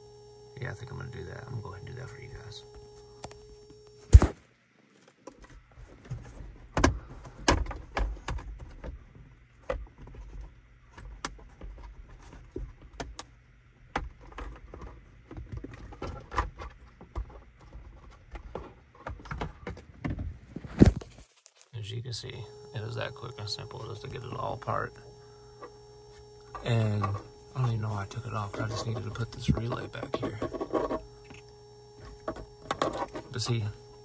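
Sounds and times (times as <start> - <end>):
microphone handling noise: 20.3 - 21.3.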